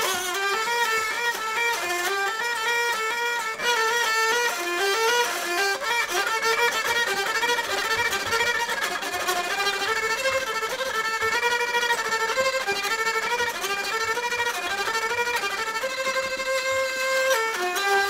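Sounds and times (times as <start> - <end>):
hurdy-gurdy melody: 0.0 - 18.0.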